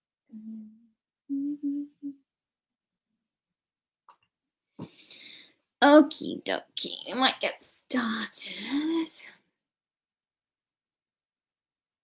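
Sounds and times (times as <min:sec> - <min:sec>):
woman humming: 0:00.3 - 0:02.2
breath: 0:04.8 - 0:05.7.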